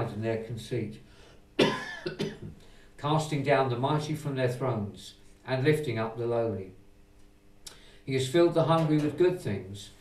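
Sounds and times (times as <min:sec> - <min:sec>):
person coughing: 0:01.6 - 0:02.6.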